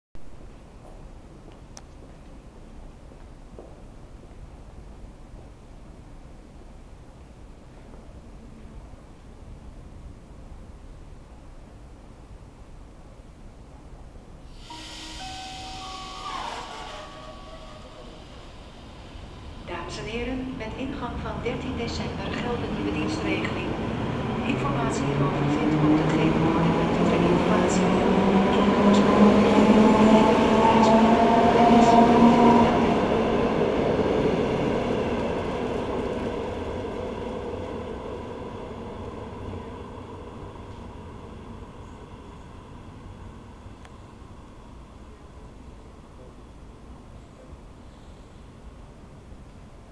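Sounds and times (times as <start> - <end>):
electric train hum and whine: 0.2 - 49.9
hiss of air: 14.4 - 19.7.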